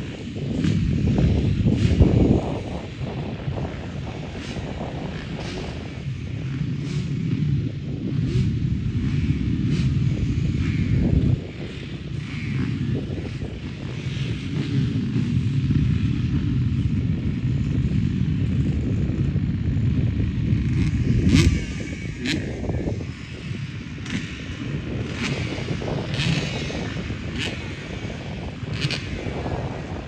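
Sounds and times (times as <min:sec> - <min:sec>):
distant motorbike engines: 0:00.0 - 0:30.0.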